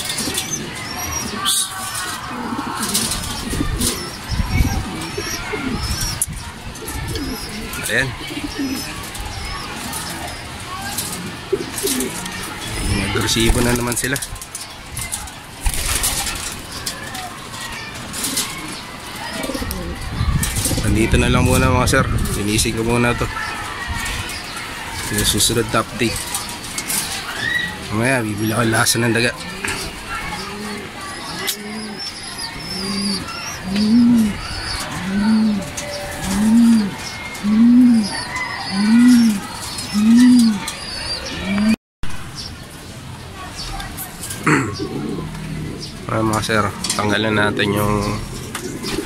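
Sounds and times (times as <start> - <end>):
pigeons cooing: 0.0 - 41.8, 44.3 - 49.0.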